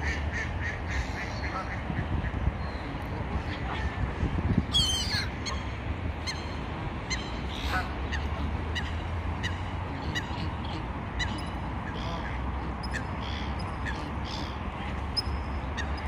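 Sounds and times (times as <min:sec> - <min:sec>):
steady low rumble: 0:00.0 - 0:16.0
waterbirds calling: 0:00.0 - 0:16.0.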